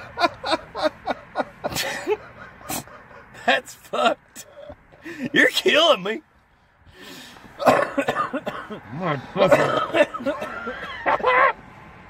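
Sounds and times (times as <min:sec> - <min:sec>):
man coughing: 0:01.7 - 0:04.2, 0:07.6 - 0:11.2.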